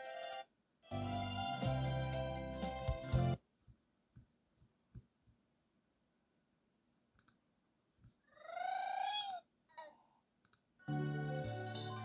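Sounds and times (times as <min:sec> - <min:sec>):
music: 0:00.0 - 0:03.4, 0:10.8 - 0:12.0.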